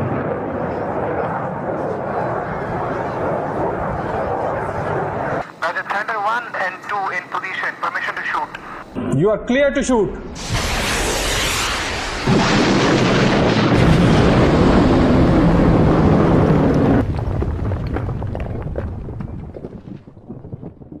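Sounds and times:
missile rushing roar: 0:10.2 - 0:17.7
crackling rumble: 0:10.4 - 0:21.0.

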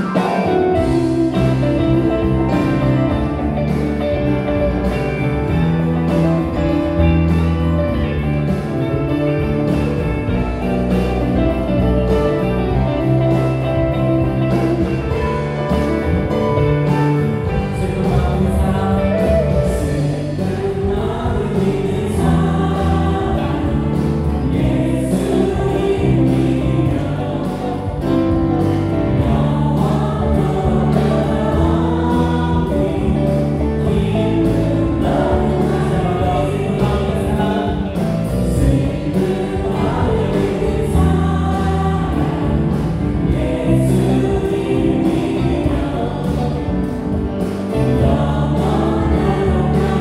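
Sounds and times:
bass guitar: 0:00.0 - 0:50.0
drums: 0:00.0 - 0:50.0
electric guitar: 0:00.0 - 0:50.0
group of voices singing: 0:00.0 - 0:50.0
keyboards: 0:00.0 - 0:50.0.

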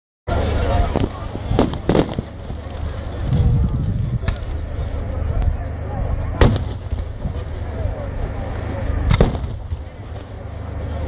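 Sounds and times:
low rumble: 0:00.3 - 0:11.0.

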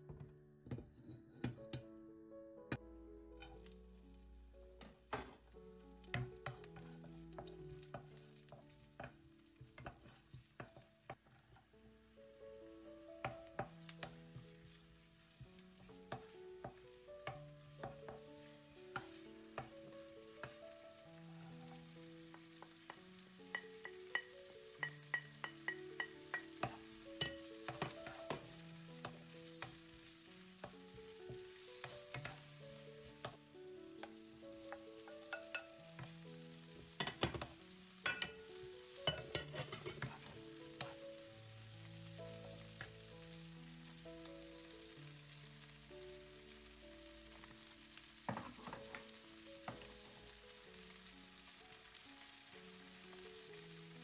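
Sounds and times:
soft background music: 0:00.0 - 0:54.0
vegetables sizzling in oil: 0:03.4 - 0:54.0.

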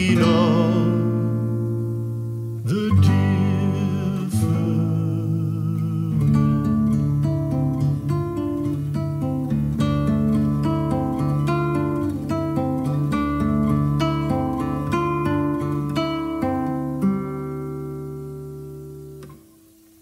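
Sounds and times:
classical guitar fingerstyle: 0:00.0 - 0:20.0.

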